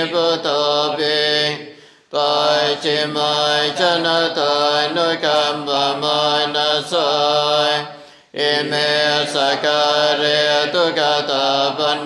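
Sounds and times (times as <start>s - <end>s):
voices chanting: 0.0s - 12.0s.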